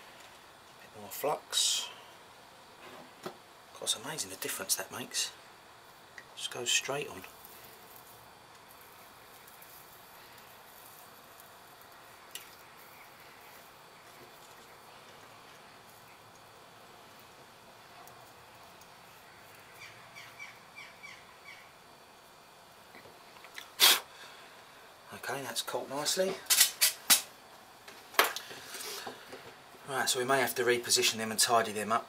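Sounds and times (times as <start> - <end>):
faint background hiss: 0.0 - 32.0
bird chirping: 19.7 - 21.7.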